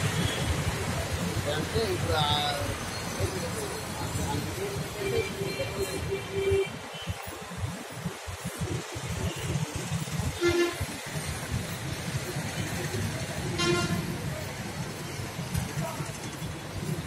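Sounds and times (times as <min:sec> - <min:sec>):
street traffic rumbling: 0:00.0 - 0:17.0
vehicle horn: 0:10.4 - 0:11.0, 0:13.6 - 0:14.1.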